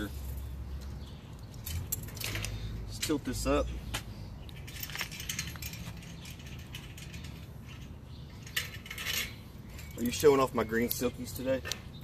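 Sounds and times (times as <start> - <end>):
metal trailer clicks and rattles: 4.5 - 11.8.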